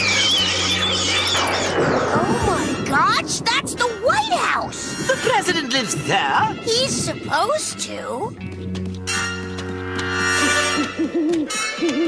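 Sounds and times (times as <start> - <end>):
cartoon bats squealing: 0.0 - 2.5.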